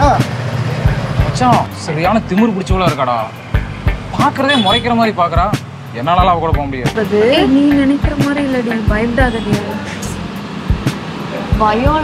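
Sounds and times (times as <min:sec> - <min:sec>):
low thudding beats: 0:00.0 - 0:12.0
man talking: 0:01.3 - 0:03.4, 0:04.1 - 0:07.0.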